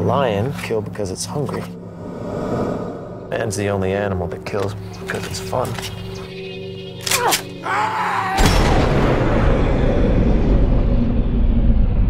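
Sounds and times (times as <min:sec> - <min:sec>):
deep cinematic boom rumble: 0:08.6 - 0:12.0.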